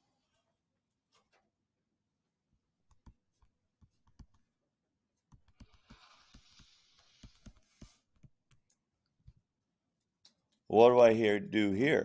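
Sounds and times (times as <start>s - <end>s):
stylus tapping on touchscreen: 2.8s - 4.4s, 5.3s - 8.7s.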